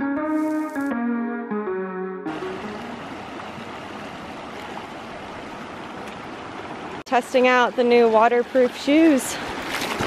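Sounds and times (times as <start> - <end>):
guitar music: 0.0 - 3.5
creek running over rocks: 0.3 - 0.9, 2.3 - 10.0.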